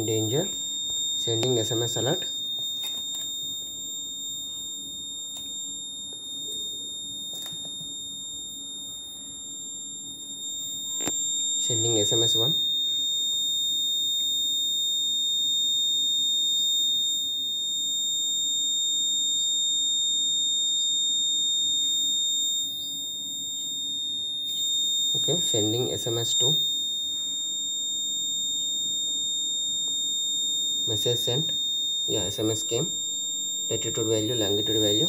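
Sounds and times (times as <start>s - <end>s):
high-pitched alarm buzzer tone: 0.0s - 35.0s.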